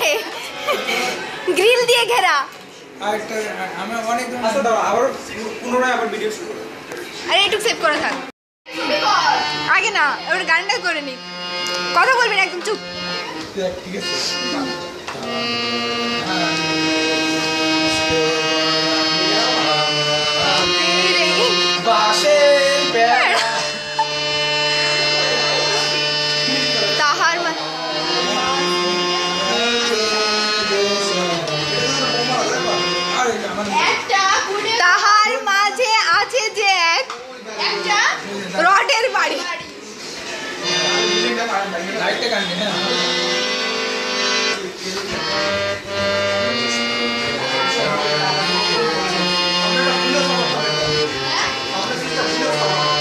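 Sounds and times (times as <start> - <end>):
harmonium chords: 0.0 - 53.0.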